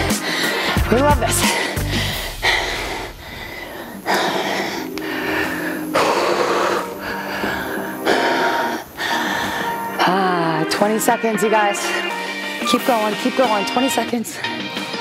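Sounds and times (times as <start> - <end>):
background music: 0.0 - 15.0.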